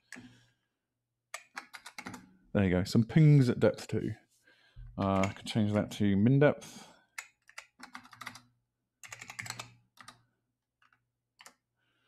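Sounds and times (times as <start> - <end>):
keyboard typing clicks: 1.4 - 2.2, 5.0 - 5.5, 7.2 - 10.2.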